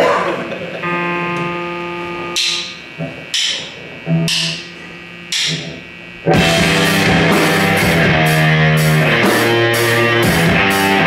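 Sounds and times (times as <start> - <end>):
electric guitar chord ringing: 0.0 - 11.0
rock band playing: 0.6 - 3.5, 6.2 - 11.0
cymbal and bass accents: 0.8 - 11.0.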